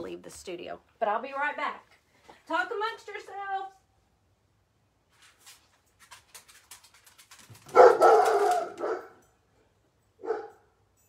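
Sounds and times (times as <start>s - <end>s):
small dog barking: 7.7s - 9.2s, 10.2s - 10.6s.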